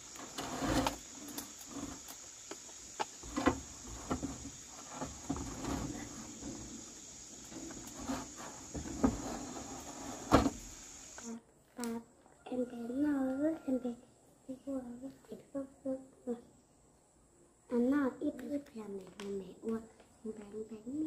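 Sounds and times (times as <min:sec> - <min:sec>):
insects chirring: 0:00.0 - 0:21.0
metal roofing sheet knocks and scrapes: 0:03.2 - 0:10.8.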